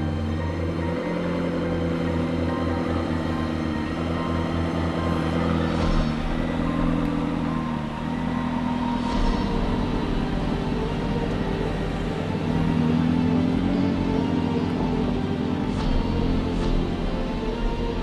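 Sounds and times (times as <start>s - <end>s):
background music: 0.0s - 18.0s
car engine exhaust pulsing: 0.0s - 18.0s.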